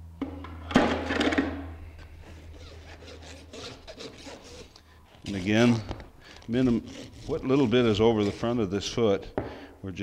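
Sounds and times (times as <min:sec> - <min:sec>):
rasp scraping hoof: 0:02.1 - 0:09.0.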